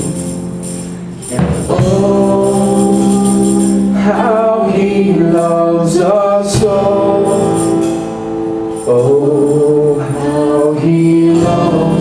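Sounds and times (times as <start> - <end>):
acoustic guitar: 0.0 - 12.0
voices singing: 1.2 - 12.0.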